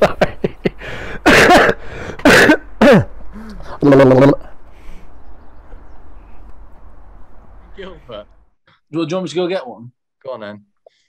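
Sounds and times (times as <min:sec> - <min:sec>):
man laughing hard: 0:00.0 - 0:04.4.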